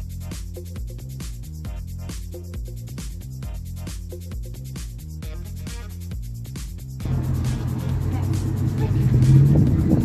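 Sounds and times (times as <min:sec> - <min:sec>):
background music: 0:00.0 - 0:10.0
car engine driving by: 0:07.0 - 0:10.0.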